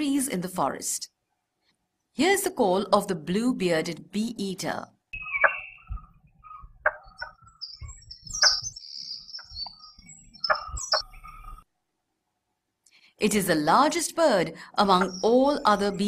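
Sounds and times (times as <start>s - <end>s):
bird sharp knocking calls: 5.2s - 11.6s, 14.9s - 15.9s.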